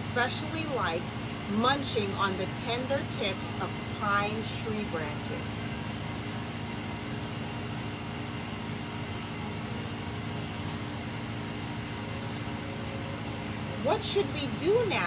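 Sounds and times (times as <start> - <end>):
steady machine hum: 0.0 - 15.0.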